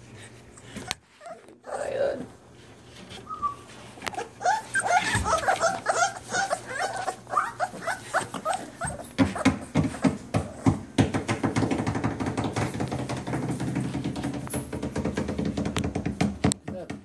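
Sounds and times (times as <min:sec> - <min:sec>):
puppies whimpering and yipping: 0:00.6 - 0:02.2, 0:03.2 - 0:10.6.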